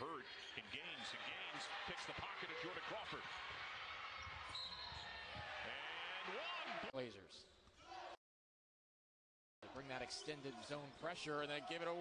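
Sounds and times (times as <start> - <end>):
arena crowd noise: 0.0 - 7.1, 9.6 - 12.0
sneaker squeaks: 4.2 - 5.1.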